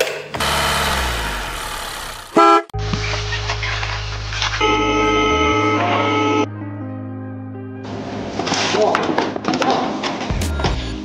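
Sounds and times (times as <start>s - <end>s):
horn-like toot: 2.3s - 2.7s, 4.6s - 6.5s.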